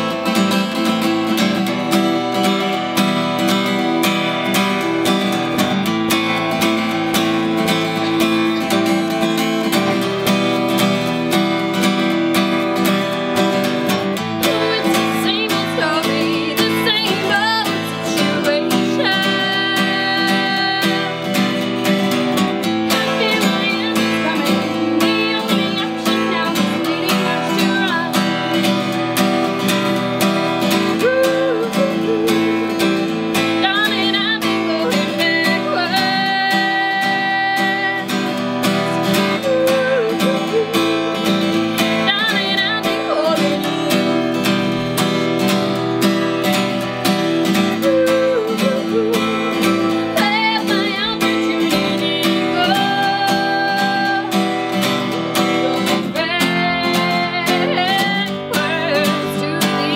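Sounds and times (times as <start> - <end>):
strummed acoustic guitar: 0.0 - 59.9
woman singing upbeat song: 0.0 - 59.9.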